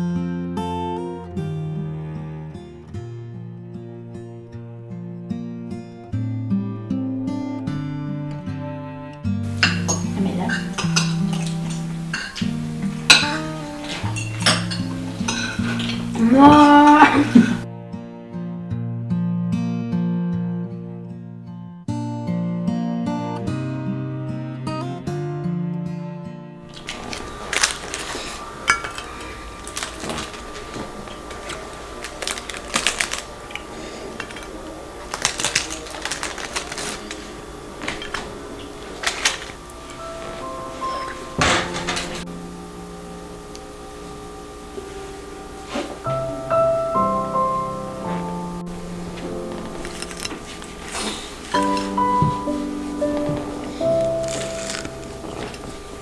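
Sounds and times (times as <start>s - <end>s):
gentle background music: 0.0s - 56.0s
cutlery clinking on plates: 9.6s - 12.5s, 13.1s - 16.2s, 26.8s - 30.8s
faint steady hum: 26.7s - 56.0s.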